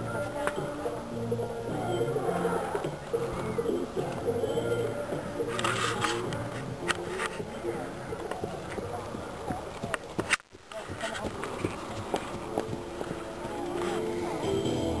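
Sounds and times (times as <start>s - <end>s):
indistinct background voices: 0.0s - 15.0s.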